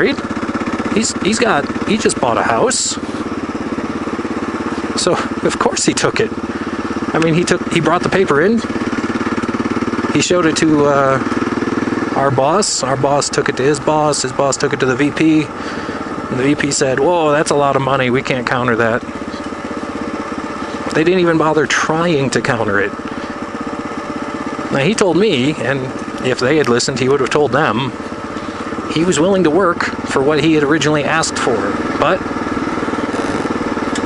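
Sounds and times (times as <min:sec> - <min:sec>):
motorcycle engine cruising: 0:00.0 - 0:34.0.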